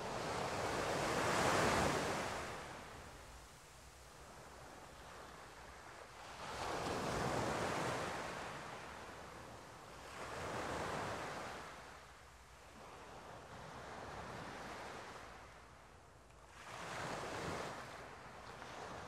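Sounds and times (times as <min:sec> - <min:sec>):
sea waves washing on shore: 0:00.0 - 0:09.0.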